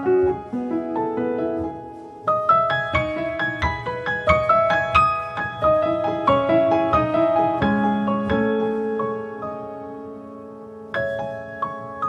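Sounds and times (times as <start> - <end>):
slow piano music: 0.0 - 12.0.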